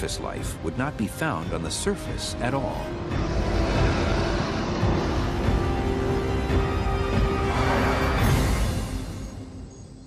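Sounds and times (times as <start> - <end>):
soundtrack music with held notes: 0.0 - 10.0.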